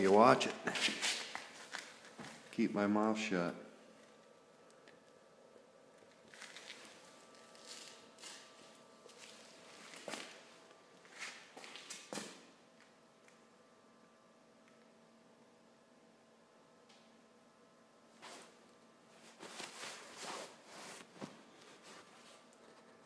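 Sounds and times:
small fan humming: 0.0 - 23.0.

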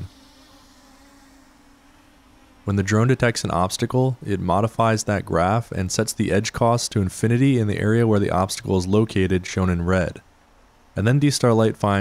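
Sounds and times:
drone propellers buzzing: 0.0 - 4.9.

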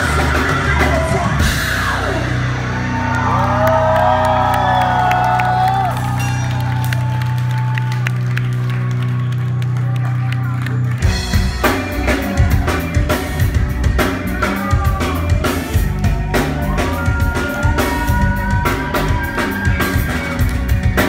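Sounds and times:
crowd whooping and cheering: 0.0 - 13.4, 14.3 - 21.0
rock band playing loudly: 0.0 - 21.0.

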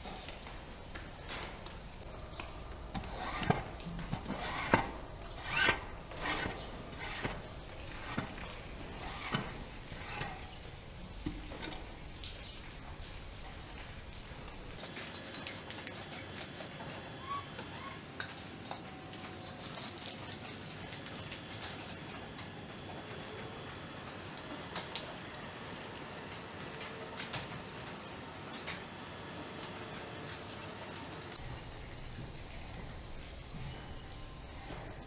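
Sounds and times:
barn background noise: 2.2 - 31.4
cow hooves on concrete: 14.8 - 25.6.

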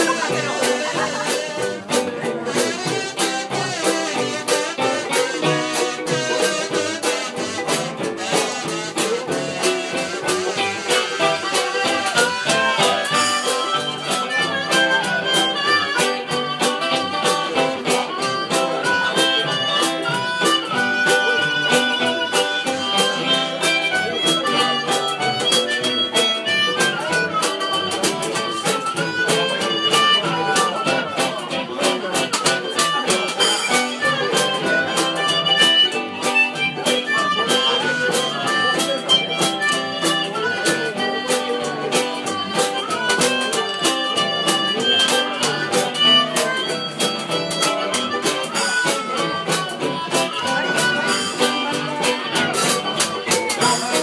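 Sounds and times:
archtop guitar strumming: 0.0 - 54.0
banjo ukulele strumming: 0.0 - 54.0
blown jug bass: 0.0 - 54.0
harmonica melody: 0.0 - 54.0.

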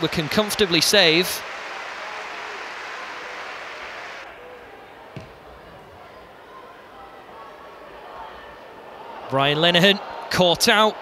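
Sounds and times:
stadium crowd hiss: 0.0 - 11.0
ball being kicked: 5.1 - 5.6.

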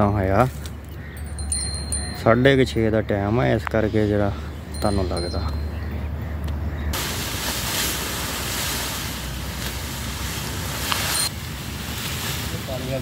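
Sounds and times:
dry leaves rustling: 7.0 - 13.0.

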